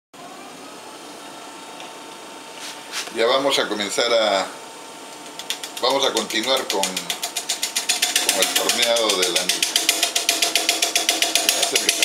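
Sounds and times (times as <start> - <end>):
wood lathe motor hum: 5.5 - 12.0.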